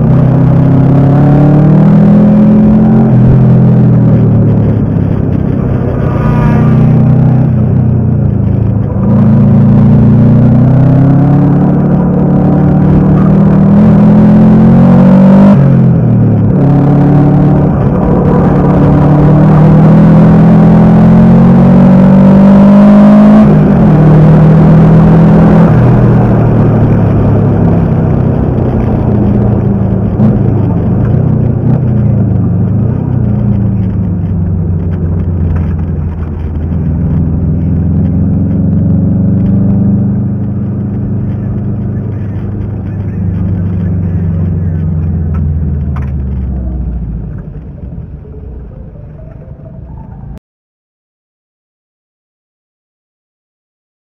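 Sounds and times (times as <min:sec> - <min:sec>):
car engine revving under load: 0:00.0 - 0:50.4.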